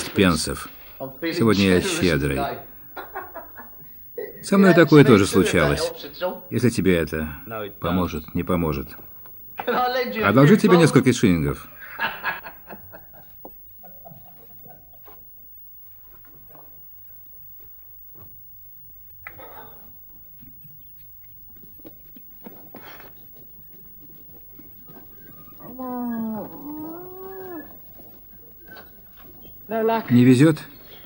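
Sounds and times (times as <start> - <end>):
farm animal calling: 20.6 - 30.0.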